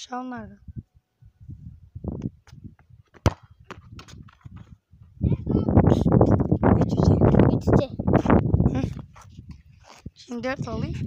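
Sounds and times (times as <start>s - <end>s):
boy's voice: 5.2s - 6.2s, 6.8s - 9.0s, 10.2s - 11.0s.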